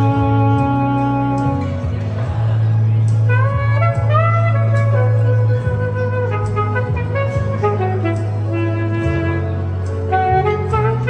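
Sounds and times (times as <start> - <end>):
alto saxophone melody: 0.0 - 2.2, 3.1 - 11.0
bass line: 0.0 - 11.0.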